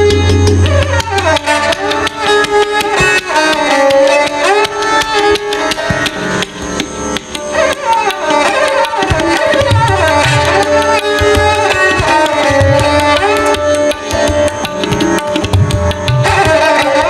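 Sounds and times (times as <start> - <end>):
rapid tabla strokes: 0.0 - 17.0
sarangi gliding melody: 0.0 - 17.0.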